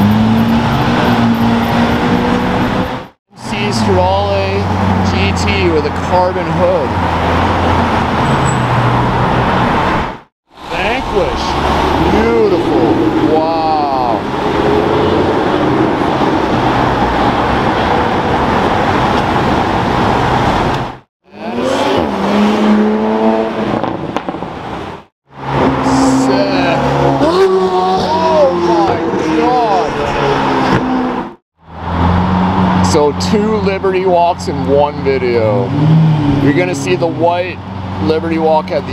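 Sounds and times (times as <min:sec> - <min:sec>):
car engines revving: 0:00.0 - 0:38.9
car pulling away: 0:35.2 - 0:38.9.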